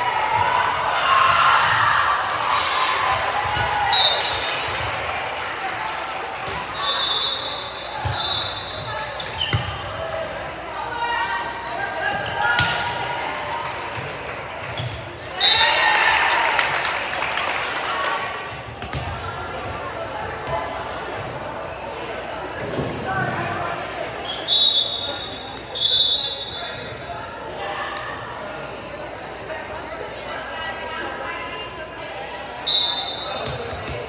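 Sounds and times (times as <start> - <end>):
crowd cheering and shouting: 0.0 - 8.4, 15.3 - 17.0
voices and shouts in a gym: 0.0 - 34.0.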